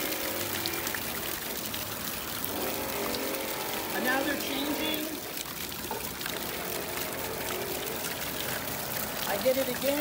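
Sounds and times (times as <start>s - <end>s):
fountain jets splashing: 0.0s - 10.0s.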